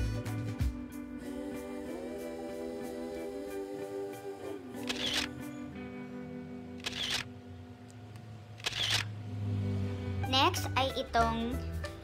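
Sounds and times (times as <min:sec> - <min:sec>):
short sharp clicks: 0:04.8 - 0:05.3, 0:06.8 - 0:07.3, 0:08.6 - 0:09.1.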